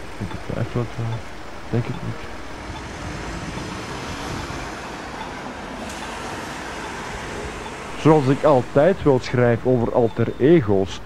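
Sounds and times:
road traffic hiss: 0.0s - 11.0s.

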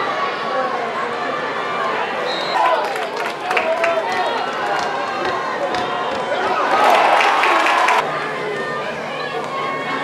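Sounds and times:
crowd shouting and calling: 0.0s - 10.0s.

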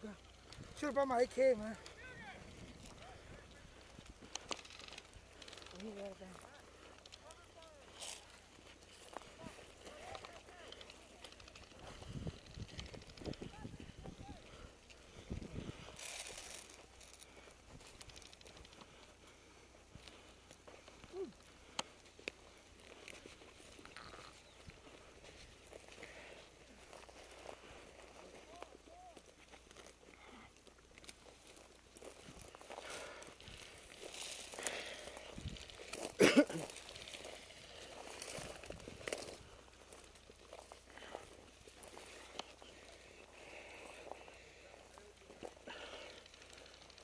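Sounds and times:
footsteps through dry brush: 0.0s - 47.0s
person laughing: 36.2s - 36.7s.

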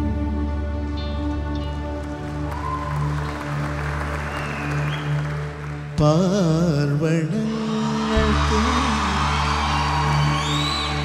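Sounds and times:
audience member whistling: 4.0s - 5.5s, 9.7s - 11.0s.

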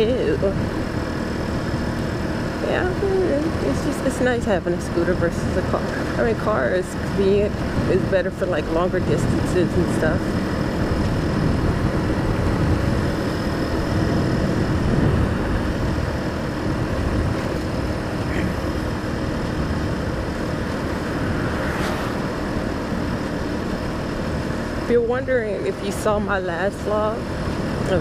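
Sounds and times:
scooter engine cruising: 0.0s - 28.0s
wind noise: 0.0s - 28.0s.

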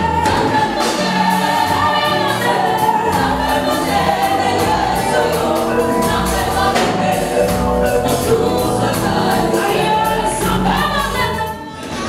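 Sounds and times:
backing vocalists singing: 0.0s - 12.0s
gospel band playing: 0.0s - 12.0s
woman singing lead: 0.0s - 12.0s.

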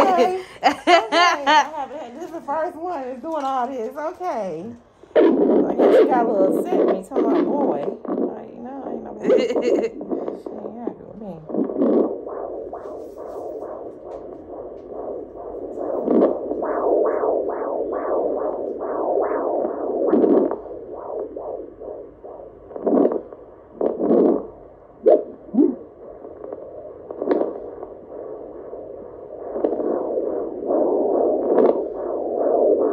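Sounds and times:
doppler probe scraping: 1.7s - 32.9s
doppler heartbeat whooshing: 5.1s - 32.9s.

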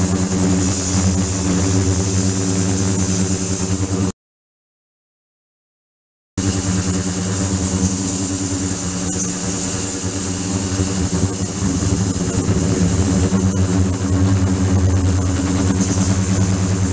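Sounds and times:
ultrasonic cleaner humming: 6.5s - 16.9s.

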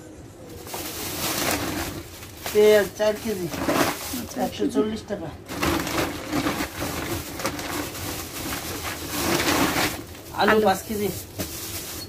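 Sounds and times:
plastic bags rustling: 0.5s - 12.0s.

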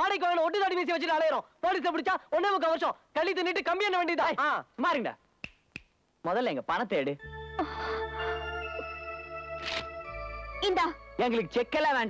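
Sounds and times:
finger snaps: 5.4s - 6.0s.

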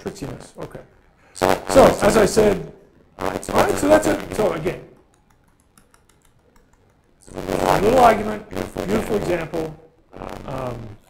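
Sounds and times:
laptop keyboard clicks: 5.0s - 7.2s.

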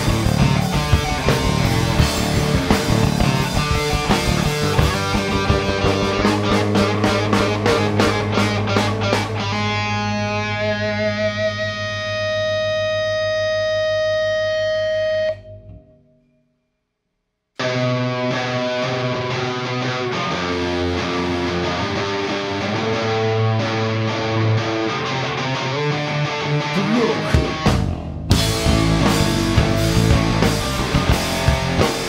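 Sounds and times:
rock band playing: 0.0s - 15.8s, 17.6s - 32.0s
distorted electric guitar chord: 0.0s - 16.2s, 17.6s - 32.0s.

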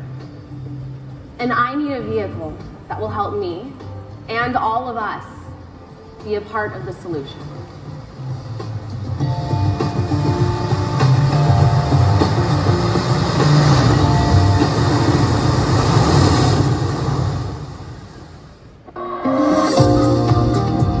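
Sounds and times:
ocean surf rumbling: 8.4s - 19.8s
held synth chord: 9.2s - 16.0s, 18.9s - 21.0s.

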